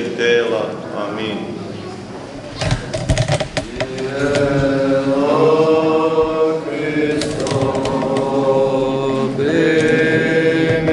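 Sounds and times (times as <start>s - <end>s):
voices singing liturgical chant: 3.6s - 10.9s.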